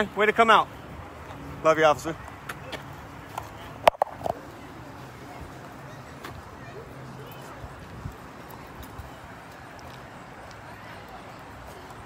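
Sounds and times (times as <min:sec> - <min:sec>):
faint indistinct voices: 0:00.0 - 0:12.0.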